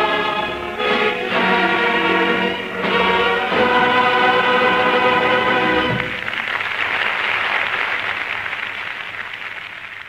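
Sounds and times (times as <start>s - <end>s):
orchestra music: 0.0s - 6.5s
audience applauding: 5.4s - 10.0s.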